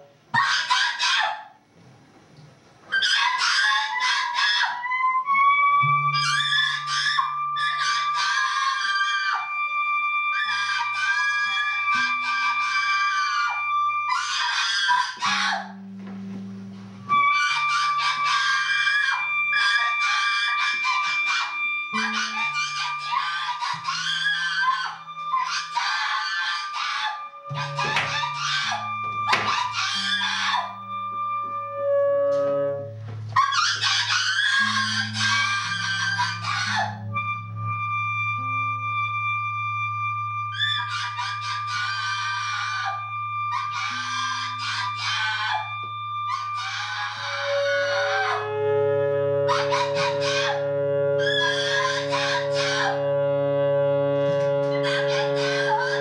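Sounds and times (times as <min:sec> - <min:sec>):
woman screaming: 0:00.3 - 0:01.5, 0:03.0 - 0:04.9, 0:13.3 - 0:15.7, 0:17.6 - 0:30.8, 0:33.4 - 0:37.0
saxophone tones: 0:04.9 - 0:08.2, 0:08.8 - 0:14.4, 0:15.0 - 0:56.0
electric guitar tones: 0:15.2 - 0:18.3, 0:27.3 - 0:38.7, 0:47.5 - 0:56.0.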